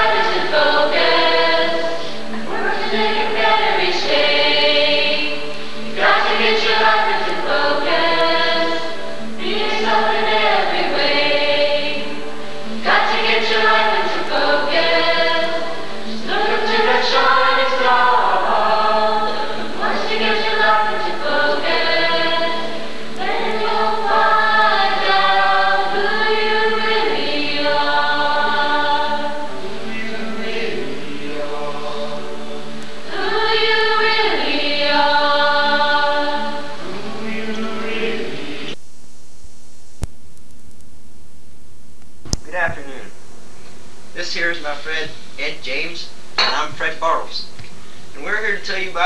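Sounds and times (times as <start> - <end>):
choir singing: 0.0 - 38.8.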